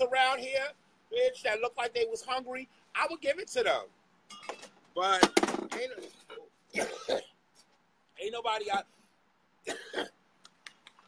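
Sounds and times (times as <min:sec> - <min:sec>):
woman clearing her throat: 0:06.7 - 0:07.4, 0:09.7 - 0:10.2.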